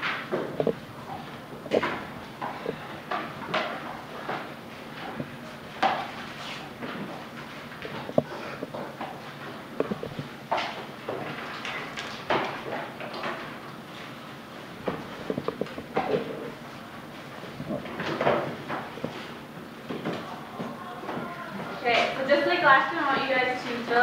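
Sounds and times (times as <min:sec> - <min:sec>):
desks and chairs clicking: 0:00.0 - 0:22.3.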